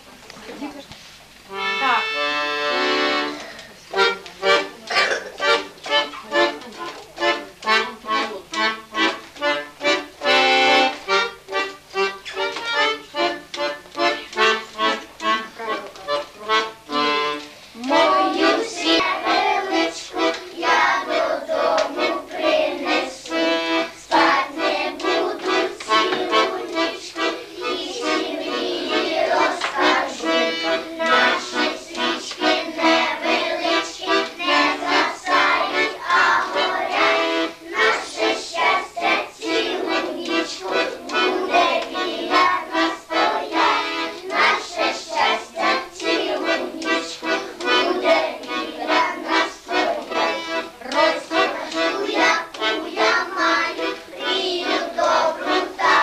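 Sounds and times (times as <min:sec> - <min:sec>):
accordion playing chords: 0:01.2 - 0:56.0
children singing: 0:14.1 - 0:56.0.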